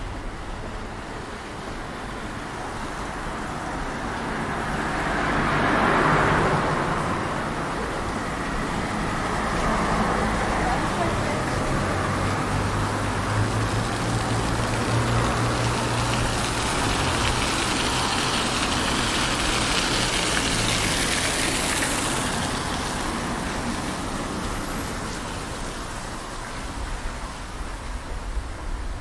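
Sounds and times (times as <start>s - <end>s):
fountain water splashing on paving: 0.0s - 29.0s
road traffic hum: 0.0s - 29.0s.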